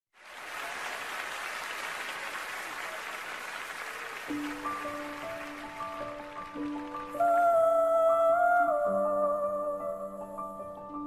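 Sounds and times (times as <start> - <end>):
audience applauding: 0.2 - 7.7.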